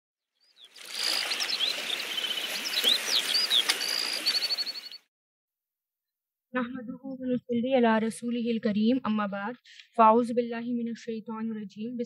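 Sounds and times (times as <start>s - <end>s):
small birds chirping: 0.4s - 5.1s
flowing water rushing: 0.7s - 4.8s.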